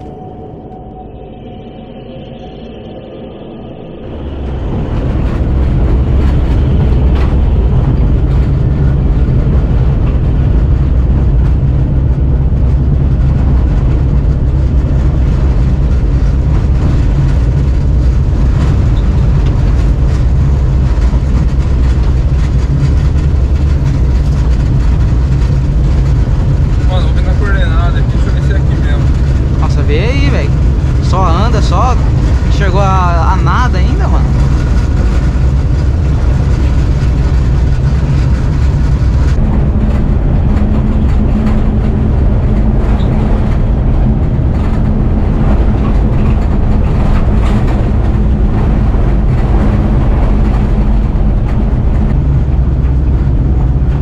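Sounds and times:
car driving on dirt road: 0:04.0 - 0:54.0.

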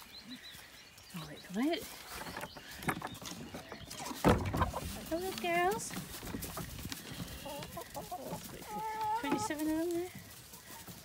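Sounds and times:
hens scuffling on wood: 0:00.6 - 0:11.0.

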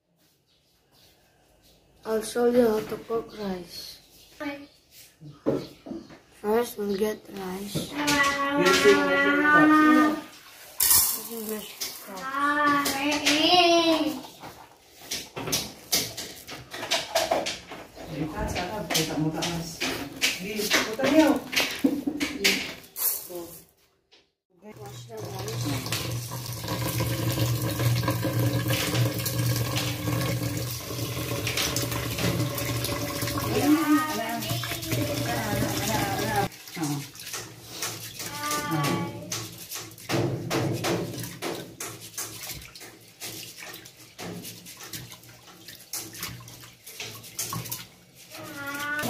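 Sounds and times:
tap water running into pot: 0:07.9 - 0:17.9, 0:24.7 - 0:49.0
hands swishing rice in water: 0:33.4 - 0:49.0.

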